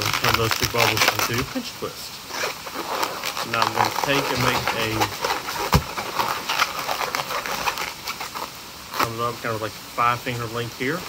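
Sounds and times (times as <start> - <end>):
balloon squeaking and rubbing: 0.0 - 9.4.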